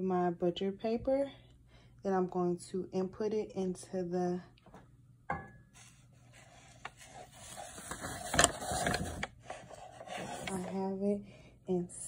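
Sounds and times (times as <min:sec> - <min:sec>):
paper-wrapped mug scraping: 0:05.8 - 0:10.8.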